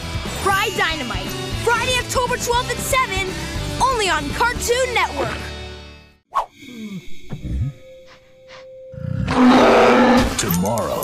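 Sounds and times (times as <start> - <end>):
monster roar: 9.0 - 10.4.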